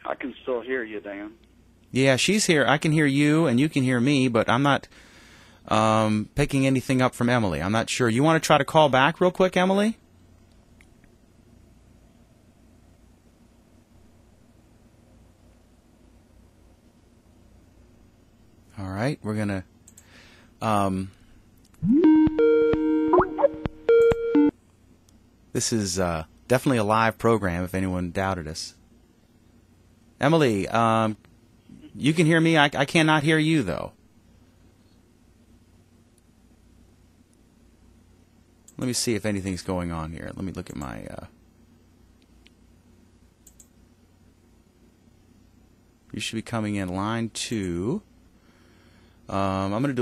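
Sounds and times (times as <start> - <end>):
electronic telephone tones: 21.8 - 24.5
sharp clicks: 43.4 - 43.7.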